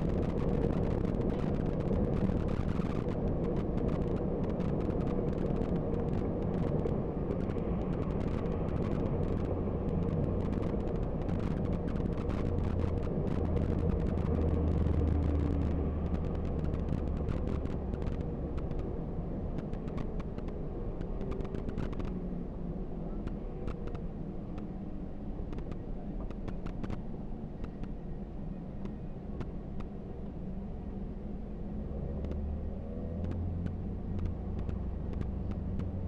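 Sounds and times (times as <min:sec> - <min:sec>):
bus engine and tyre drone: 0:00.0 - 0:36.0.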